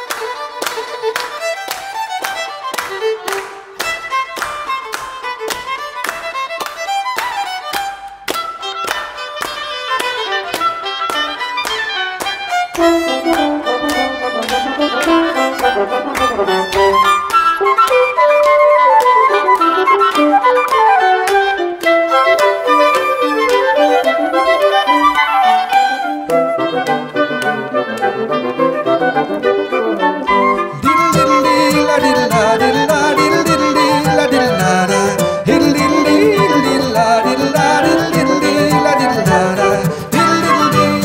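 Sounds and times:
clarinet: 0.0 - 41.0
fiddle: 0.0 - 41.0
oboe: 8.5 - 41.0
bassoon: 12.7 - 41.0
flute: 12.7 - 41.0.

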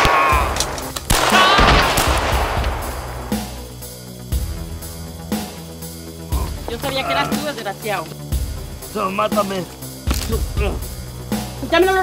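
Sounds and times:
gunshots with echoing tail: 0.0 - 3.5
low film music score: 0.0 - 12.0.

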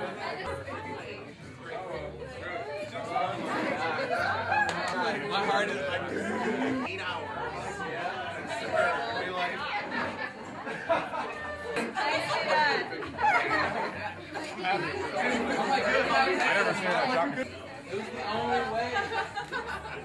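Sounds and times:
group of people chattering: 0.0 - 20.0.

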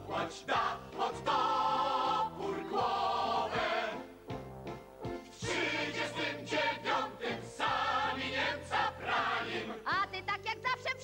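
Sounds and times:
men and women singing: 0.0 - 4.0, 5.4 - 9.8.

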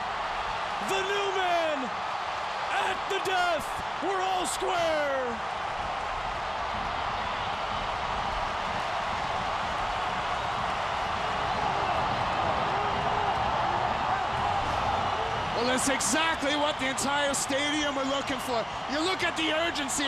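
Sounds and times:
stadium crowd cheering: 0.0 - 20.0.

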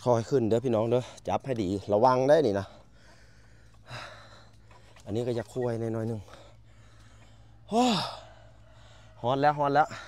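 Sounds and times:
man sighing with effort: 7.4 - 8.6.

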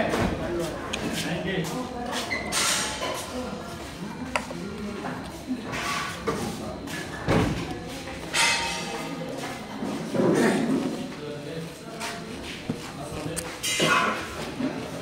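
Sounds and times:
indistinct voices in a large room: 0.0 - 15.0
spoon clinking on steel plates: 8.3 - 9.2.

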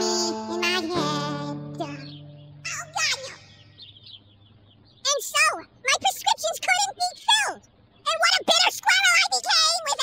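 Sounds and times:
squeaky cartoon squirrel voice: 0.0 - 3.5, 5.1 - 10.0.

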